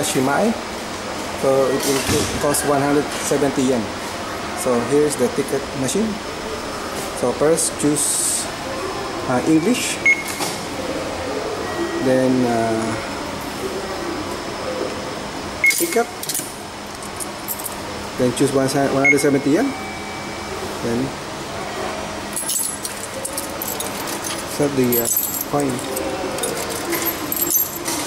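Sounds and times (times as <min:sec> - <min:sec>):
steady background hum: 0:00.0 - 0:28.0
ticket machine beep: 0:10.0 - 0:10.5, 0:15.6 - 0:16.1, 0:19.0 - 0:20.4
coins clinking: 0:15.6 - 0:17.8, 0:22.3 - 0:28.0.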